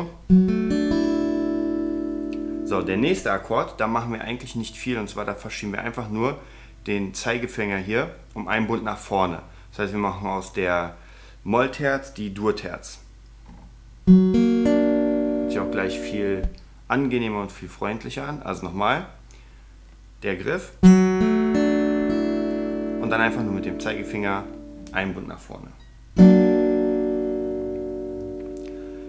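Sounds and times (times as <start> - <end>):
fingerpicked acoustic guitar chord: 0.3 - 3.3, 14.1 - 16.5, 20.8 - 25.0, 26.2 - 29.0.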